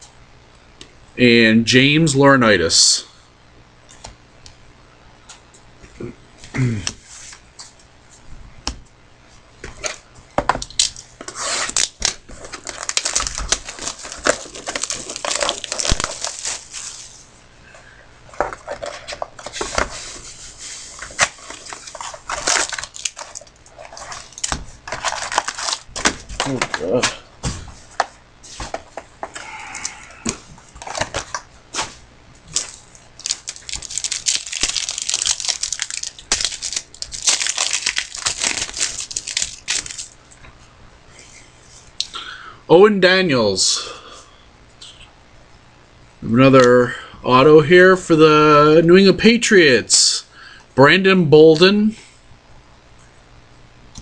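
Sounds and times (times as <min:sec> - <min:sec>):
wrappers tearing and crinkling: 0:10.6 - 0:17.3, 0:20.8 - 0:27.3, 0:30.7 - 0:31.5, 0:32.5 - 0:40.2.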